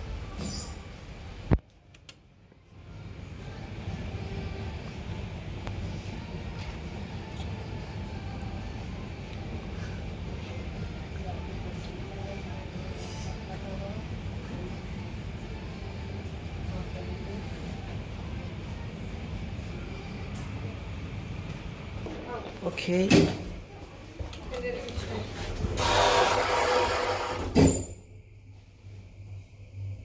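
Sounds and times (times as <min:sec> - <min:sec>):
elevator running noise: 0:02.8 - 0:30.0.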